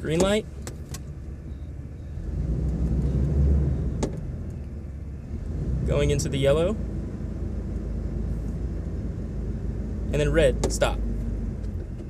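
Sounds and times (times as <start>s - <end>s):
car engine rumbling: 0.0s - 12.0s.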